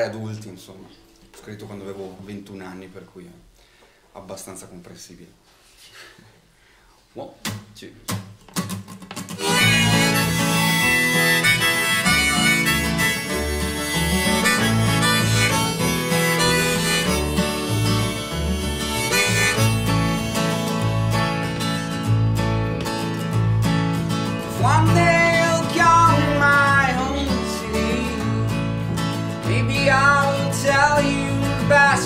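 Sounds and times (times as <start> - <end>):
strummed acoustic guitar: 7.4 - 32.0
harmonica melody: 9.3 - 32.0.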